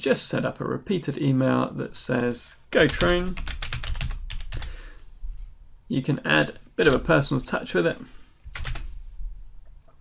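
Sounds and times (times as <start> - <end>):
computer keyboard keystrokes: 2.9 - 4.7, 6.2 - 7.1, 8.5 - 8.9.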